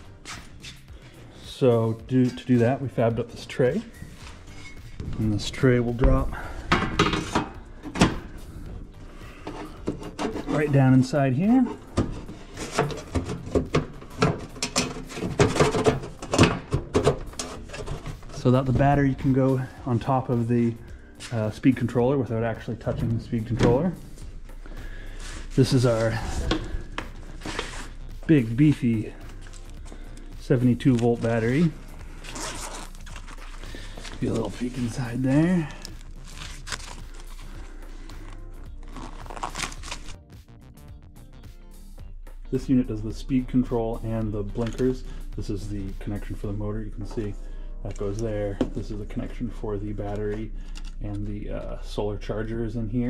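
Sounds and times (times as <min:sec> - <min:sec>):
background music: 0:00.0 - 0:53.0
metal tray knocks and scrapes: 0:06.7 - 0:08.2, 0:11.9 - 0:18.2
fabric cover rustling and crinkling: 0:30.8 - 0:40.2.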